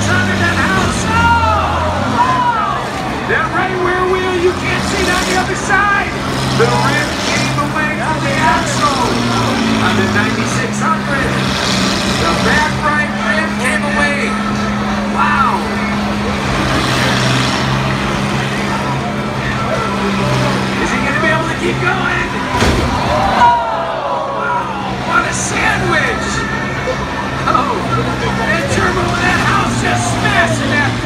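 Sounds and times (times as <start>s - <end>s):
combine harvester engines droning: 0.0s - 31.0s.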